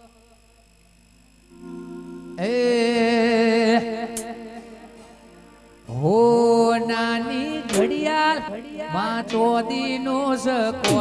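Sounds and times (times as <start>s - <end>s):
man singing long notes: 1.5s - 11.0s.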